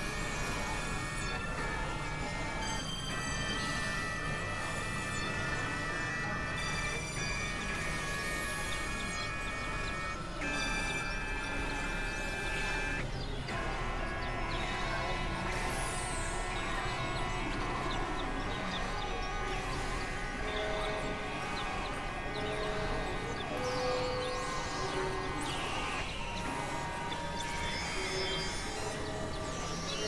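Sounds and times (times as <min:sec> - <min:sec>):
electronic drone music: 0:00.0 - 0:30.0.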